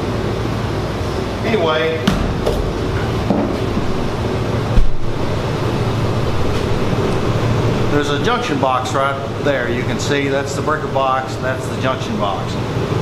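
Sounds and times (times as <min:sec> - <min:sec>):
mechanical drone with low hum: 0:00.0 - 0:13.0
loud thump: 0:02.0 - 0:05.2.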